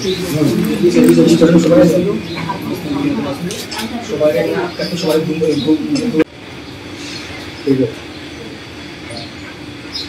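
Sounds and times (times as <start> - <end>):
low even hum: 0.0 - 10.0.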